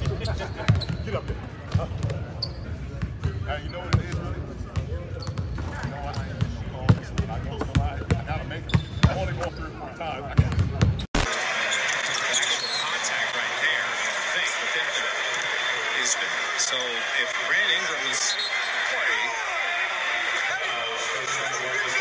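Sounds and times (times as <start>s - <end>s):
indistinct men talking: 2.8s - 22.0s
crowd roar: 11.2s - 22.0s.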